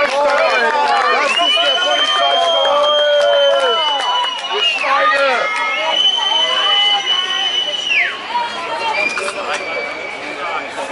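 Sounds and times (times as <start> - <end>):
crowd shouting: 0.0 - 10.9
shrill whistle blasts: 1.2 - 10.6.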